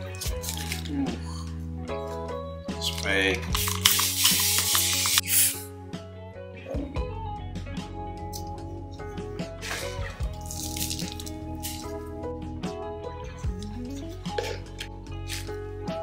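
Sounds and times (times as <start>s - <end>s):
background music: 0.0s - 16.0s
spray bottle squirts: 3.5s - 5.7s.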